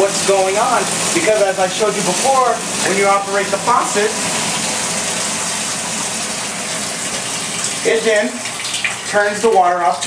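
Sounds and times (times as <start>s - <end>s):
tap water running: 0.0s - 10.0s.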